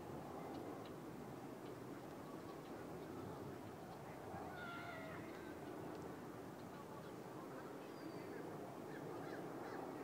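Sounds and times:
low background noise: 0:00.0 - 0:10.0
faint animal cry: 0:04.4 - 0:05.5.

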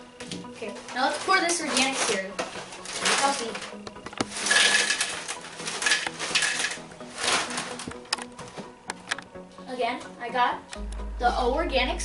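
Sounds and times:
plastic bag crinkling: 0:00.4 - 0:08.3
cereal pouring into a bowl: 0:02.9 - 0:07.8.

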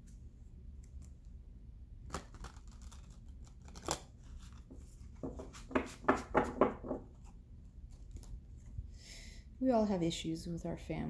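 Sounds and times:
cards being shuffled: 0:02.1 - 0:08.7.

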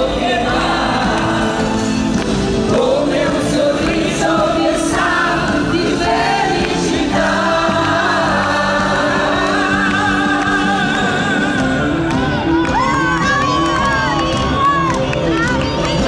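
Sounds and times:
man and woman singing: 0:00.0 - 0:12.2
live band playing: 0:00.0 - 0:16.0.

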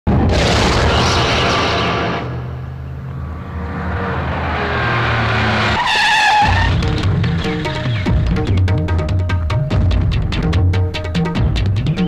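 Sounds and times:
car tyre screech: 0:03.3 - 0:07.0.

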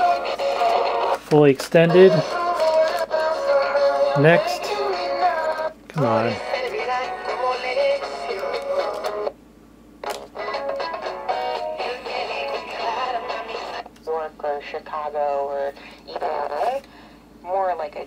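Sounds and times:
tinny radio music with singing: 0:00.0 - 0:09.4, 0:10.0 - 0:18.0
radio talk: 0:01.3 - 0:02.4, 0:04.2 - 0:04.7, 0:06.0 - 0:06.4, 0:14.1 - 0:16.9.

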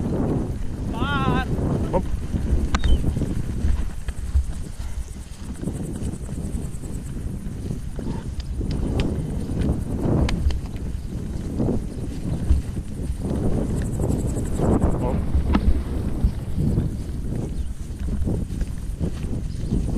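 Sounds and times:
rumbling noise: 0:00.0 - 0:18.3
horse hooves on grass: 0:00.0 - 0:19.9.

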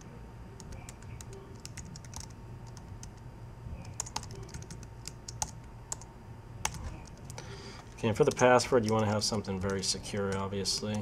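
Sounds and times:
low steady hum: 0:00.0 - 0:11.0
typing on computer keyboard: 0:00.6 - 0:03.2, 0:03.8 - 0:07.4, 0:08.2 - 0:11.0.

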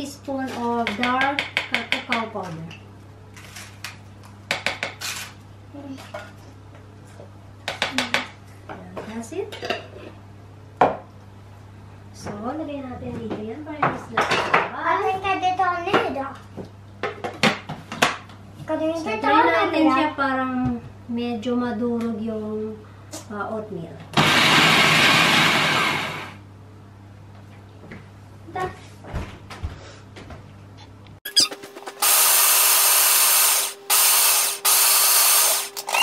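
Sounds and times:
food processor grinding: 0:24.2 - 0:26.4, 0:31.3 - 0:36.0.

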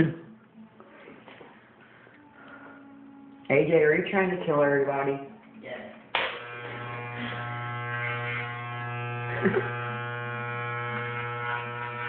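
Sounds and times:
electric hair clippers buzzing: 0:06.2 - 0:12.0.

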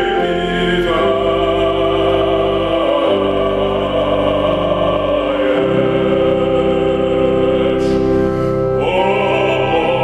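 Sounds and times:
man singing a hymn: 0:00.0 - 0:10.0
pipe organ chords: 0:00.0 - 0:10.0.

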